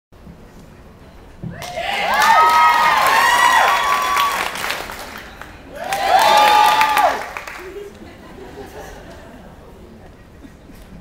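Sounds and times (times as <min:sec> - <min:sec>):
high voices whooping: 0:01.6 - 0:04.7, 0:05.7 - 0:07.4
audience applauding and cheering: 0:01.6 - 0:07.8.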